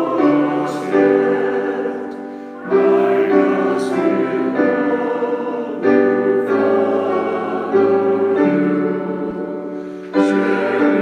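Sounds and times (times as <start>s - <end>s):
choir singing: 0.0s - 11.0s
piano accompaniment: 0.0s - 11.0s.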